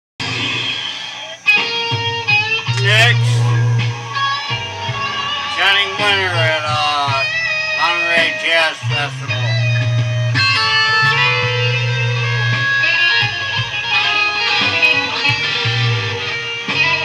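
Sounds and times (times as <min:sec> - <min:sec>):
electric guitar blues lead: 0:00.2 - 0:17.0
low bass tone: 0:02.2 - 0:17.0.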